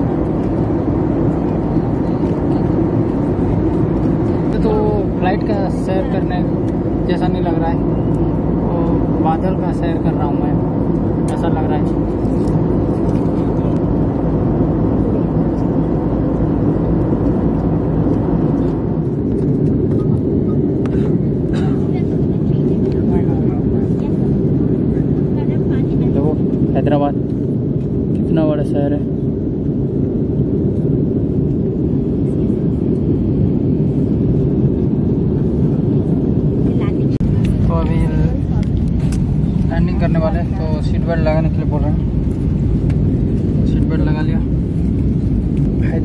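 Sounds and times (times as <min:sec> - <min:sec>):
airliner cabin engine rumble: 0:00.0 - 0:46.0.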